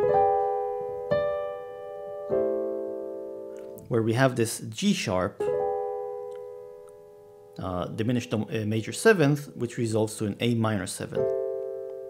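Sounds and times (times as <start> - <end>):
piano notes ringing: 0.0 - 12.0.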